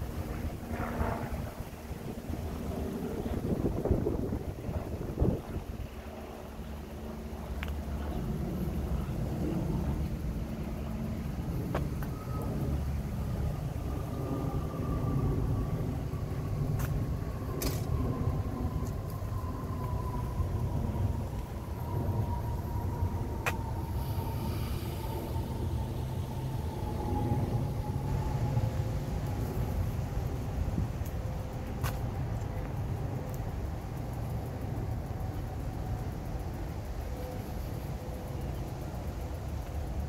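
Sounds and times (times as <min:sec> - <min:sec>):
faint whine falling in pitch: 0:00.0 - 0:39.4.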